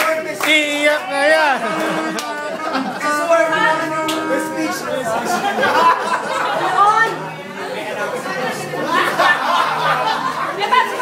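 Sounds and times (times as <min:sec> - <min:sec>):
people chattering: 0:00.0 - 0:11.0.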